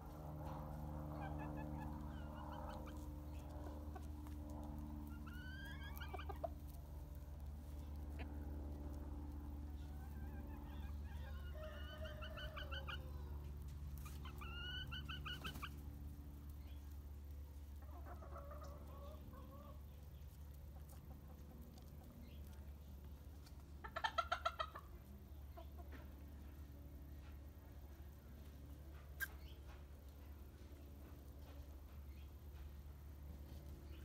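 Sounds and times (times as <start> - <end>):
steady low hum: 0.0 - 11.8, 12.4 - 23.8
chickens clucking: 0.1 - 34.0.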